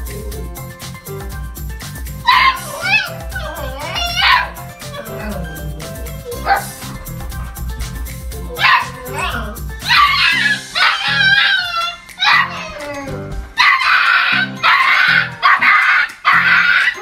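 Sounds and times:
background music with steady beat: 0.0s - 17.0s
dog vocalizing: 2.2s - 17.0s.

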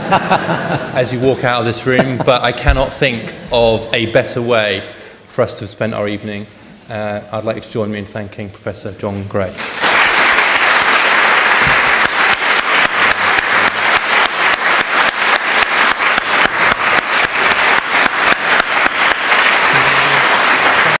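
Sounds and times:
audience applauding: 9.6s - 21.0s.

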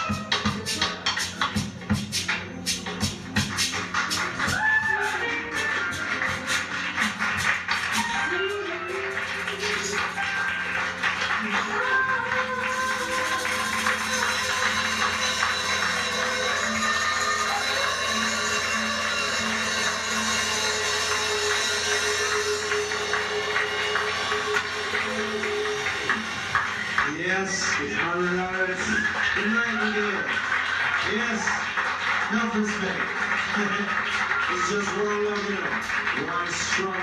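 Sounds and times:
ska band playing: 0.0s - 28.4s
hand percussion groove: 0.0s - 37.0s
woman singing: 8.0s - 10.7s, 11.3s - 14.7s.

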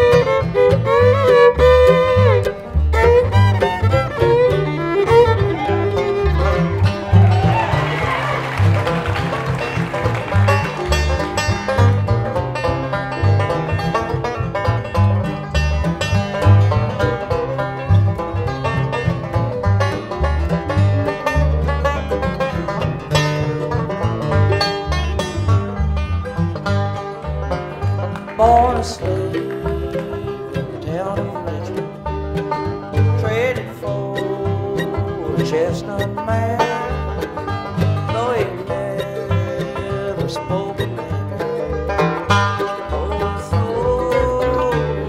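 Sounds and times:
acoustic guitar: 0.0s - 45.0s
banjo picking: 0.0s - 45.0s
steady bass line: 0.0s - 45.0s.

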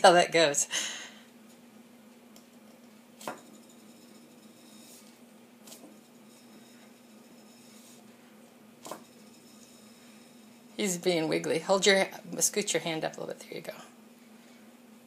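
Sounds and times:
spindle spinning hum: 0.0s - 15.0s.

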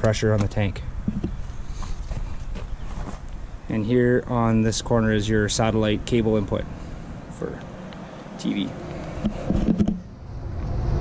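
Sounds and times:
footsteps on gravel: 1.4s - 3.4s
low steady rumble: 3.2s - 11.0s.

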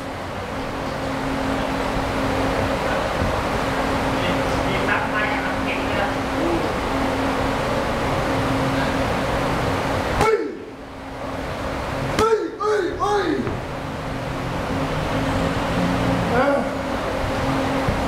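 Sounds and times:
gym fans whirring: 0.0s - 18.0s
strike on pads: 12.2s - 12.4s.

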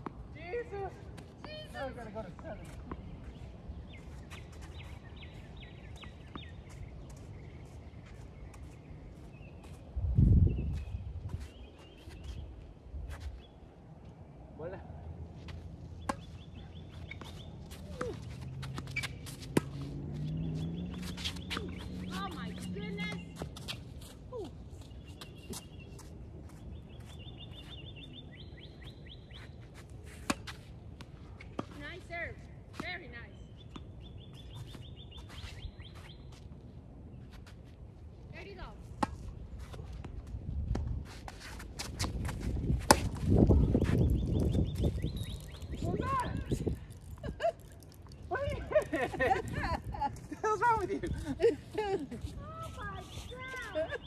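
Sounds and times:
tennis ball bouncing: 16.0s - 23.8s, 39.0s - 39.3s, 41.8s - 44.0s.

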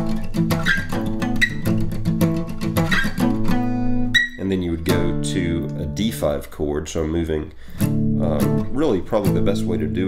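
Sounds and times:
acoustic guitar strumming: 0.0s - 6.5s, 7.6s - 10.0s.

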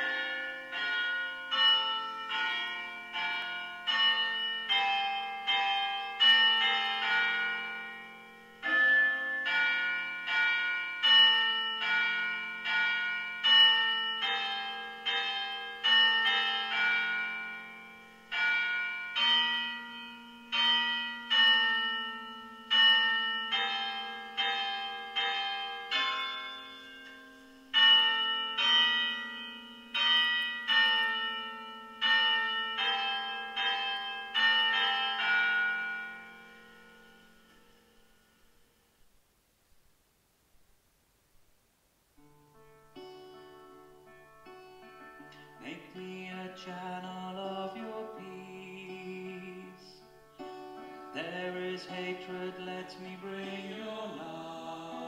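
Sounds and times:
church bells pealing: 0.0s - 38.8s, 42.2s - 55.0s.

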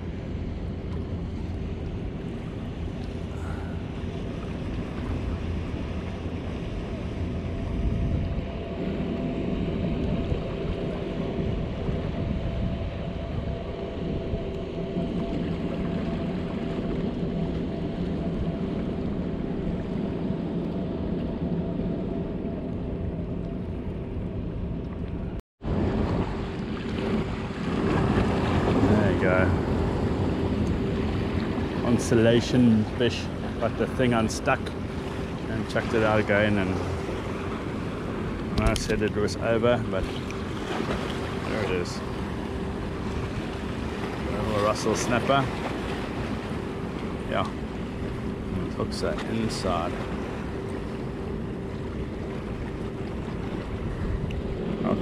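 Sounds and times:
wind on microphone: 0.0s - 48.7s
distant motorboat engine: 0.0s - 55.0s.

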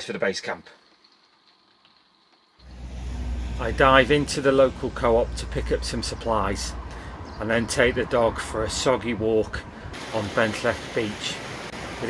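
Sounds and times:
vehicle engine running: 2.6s - 8.1s.

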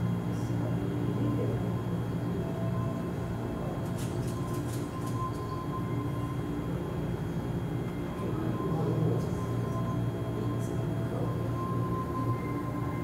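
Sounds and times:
machinery humming: 0.0s - 13.0s.

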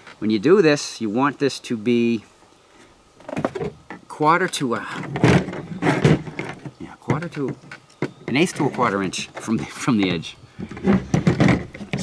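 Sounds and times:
man talking: 0.2s - 2.3s, 4.0s - 5.3s, 6.7s - 7.6s, 8.2s - 10.4s.

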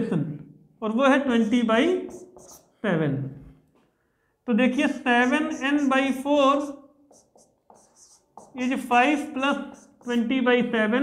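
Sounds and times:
person speaking: 0.0s - 3.5s, 4.4s - 11.0s
marker pen on whiteboard: 1.4s - 2.8s, 4.7s - 11.0s.

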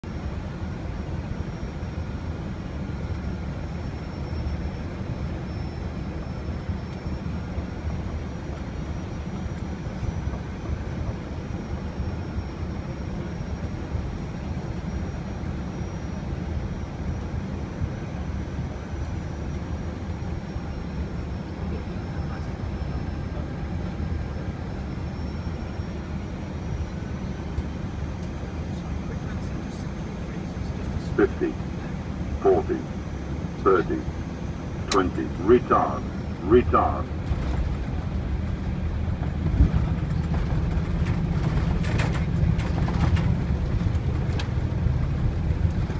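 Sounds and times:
airliner engines and airflow: 0.0s - 45.9s
faint high whine: 0.1s - 39.2s.

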